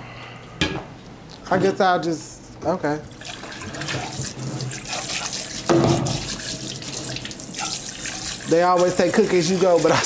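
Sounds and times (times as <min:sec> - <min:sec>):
water running from tap: 0:03.1 - 0:10.0.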